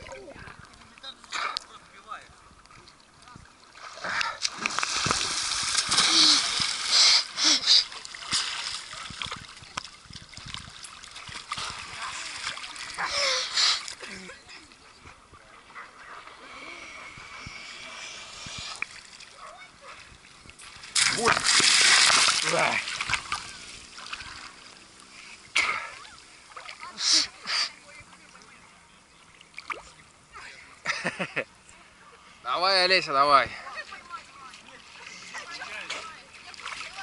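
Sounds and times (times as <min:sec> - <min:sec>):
water splashing and sloshing: 0:00.0 - 0:32.0, 0:33.0 - 0:37.0.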